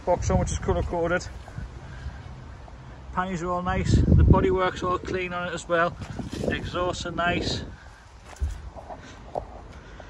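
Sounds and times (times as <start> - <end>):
footsteps: 6.0 - 6.9, 8.0 - 9.8.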